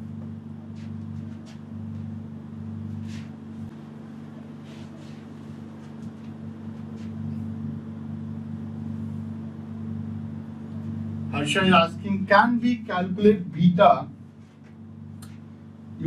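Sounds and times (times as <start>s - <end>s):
low hum of room machinery: 0.0s - 16.0s.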